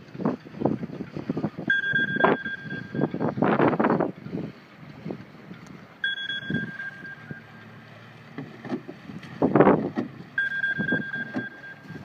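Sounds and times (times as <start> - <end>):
wind buffeting microphone: 0.0 - 6.8, 8.8 - 11.2
steady high tone: 1.7 - 3.4, 6.0 - 7.9, 10.4 - 12.0.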